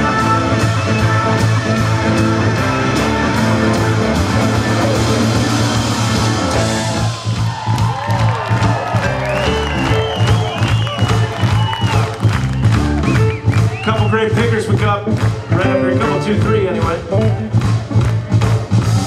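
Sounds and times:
electric blues band playing: 0:00.0 - 0:19.0.

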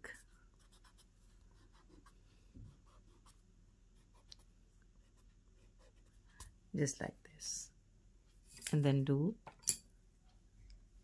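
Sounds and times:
pencil strokes on paper: 0:00.0 - 0:06.4.

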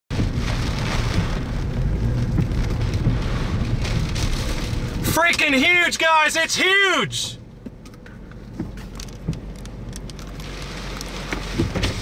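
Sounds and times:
low rumble: 0:00.1 - 0:06.0
heavy rain falling: 0:00.1 - 0:07.4, 0:08.7 - 0:12.0.

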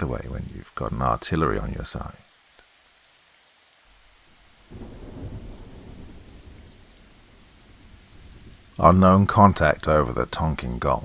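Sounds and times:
rain hissing: 0:00.0 - 0:11.0
thunder rumbling: 0:03.9 - 0:11.0.

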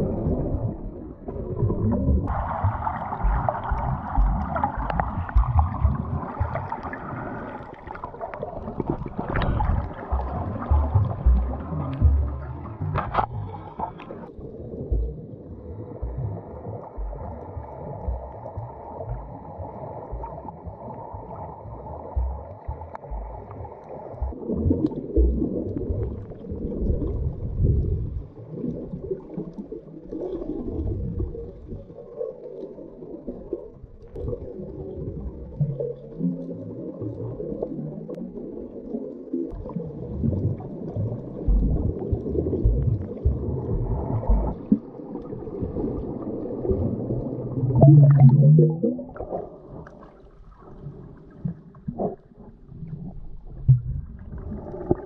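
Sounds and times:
low underwater thumps: 0:00.0 - 0:07.0, 0:08.5 - 0:28.4, 0:39.5 - 0:46.1, 0:46.7 - 0:50.0, 0:53.4 - 0:55.0
underwater water swishing: 0:00.0 - 0:55.0.

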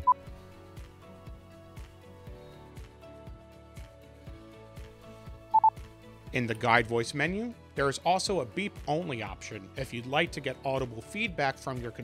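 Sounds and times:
soft background music with beat: 0:00.0 - 0:12.0
short electronic beeps: 0:05.5 - 0:05.7.

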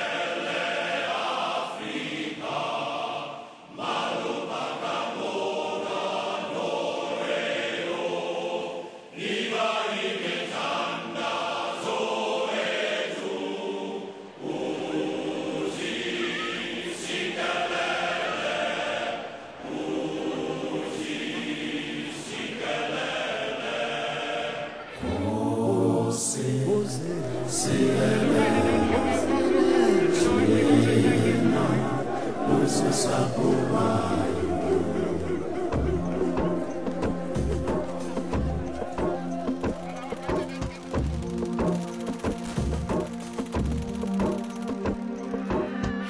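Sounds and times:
choir singing: 0:00.0 - 0:46.0
lower voices singing: 0:00.0 - 0:46.0.

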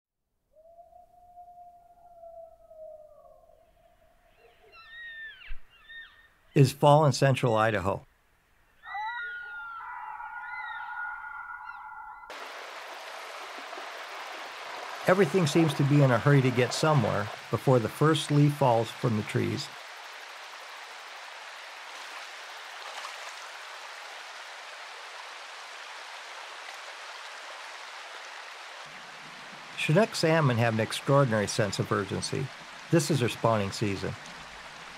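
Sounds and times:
wild animal howling: 0:00.6 - 0:06.2, 0:08.8 - 0:12.3
creek running over gravel: 0:12.3 - 0:34.9.

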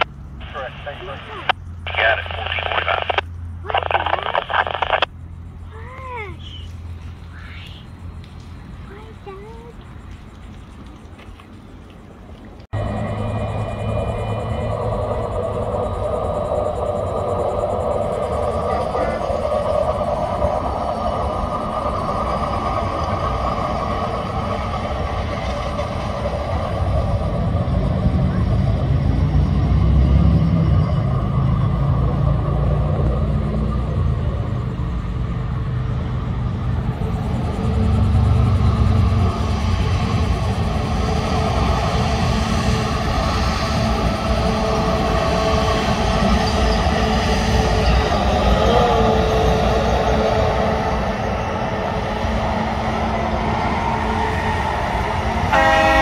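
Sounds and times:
diesel engines rumbling: 0:00.0 - 0:56.0.

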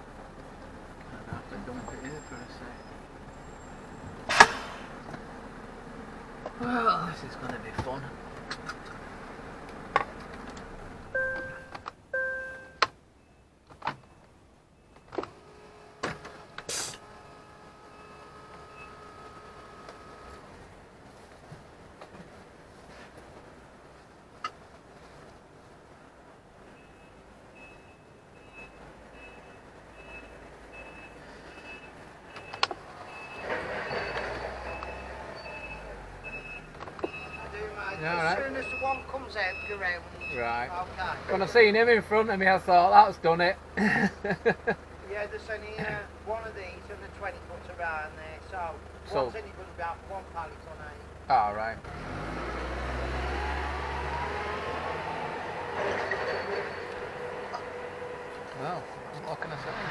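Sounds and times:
short electronic beeps: 0:11.2 - 0:13.5, 0:26.8 - 0:40.4
forklift engine: 0:30.0 - 0:59.9.

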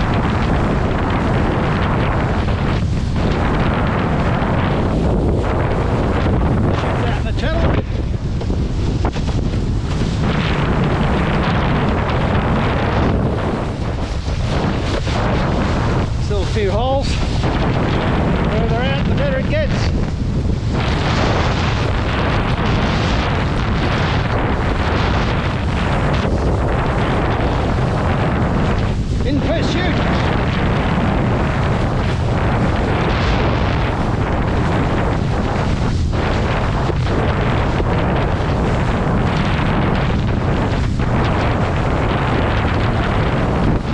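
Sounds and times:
board splashing across choppy water: 0:00.0 - 0:43.9
wind buffeting microphone: 0:00.0 - 0:43.9.

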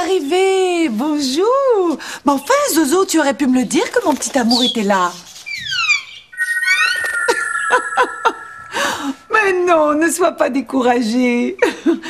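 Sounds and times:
short rising chirps: 0:05.6 - 0:09.4
cartoon bird falling whistle glides: 0:05.7 - 0:08.8
steady high two-note whistle: 0:06.3 - 0:09.1.

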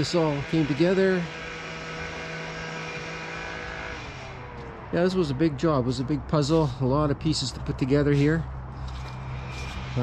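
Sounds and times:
motor drone: 0:00.0 - 0:04.9, 0:08.8 - 0:10.0.

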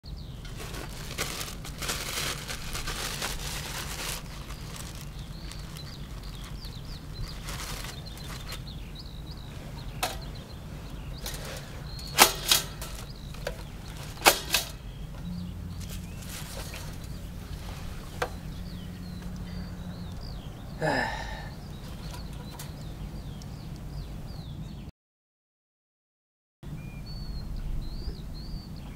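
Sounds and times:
low outdoor rumble: 0:00.1 - 0:24.9.

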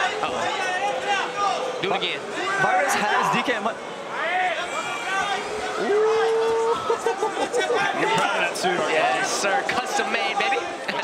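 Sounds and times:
men exclaiming: 0:04.2 - 0:11.0.

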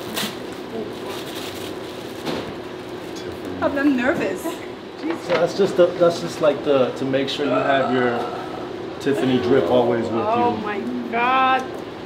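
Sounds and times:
tissue paper rustling: 0:00.0 - 0:02.3
low room hum: 0:00.0 - 0:12.0.

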